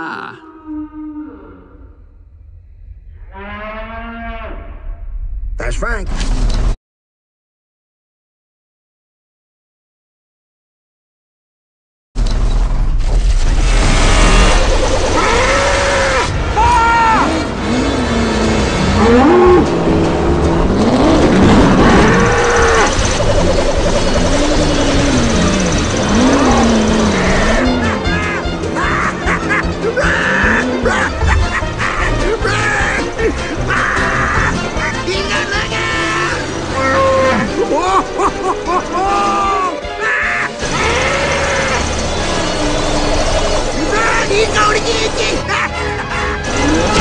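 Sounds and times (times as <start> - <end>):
soundtrack music with low tones: 12.2 - 47.0
harsh shriek: 13.6 - 17.4, 21.3 - 23.2, 39.1 - 45.1
shouted cries: 15.2 - 17.3, 26.1 - 34.8, 35.8 - 41.9.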